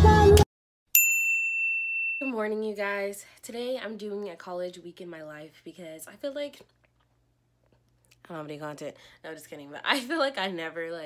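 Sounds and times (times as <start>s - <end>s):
music: 0.0s - 0.5s
bright chime ding: 1.0s - 2.4s.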